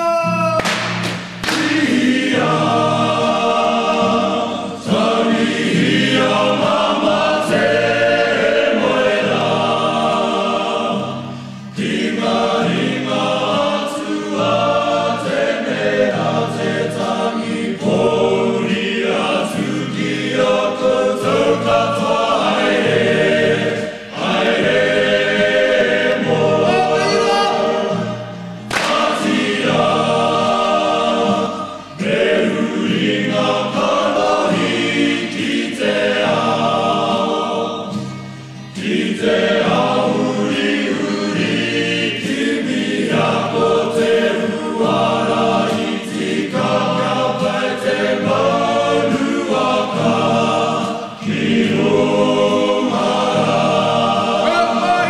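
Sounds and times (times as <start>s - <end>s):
choir singing: 0.5s - 55.0s.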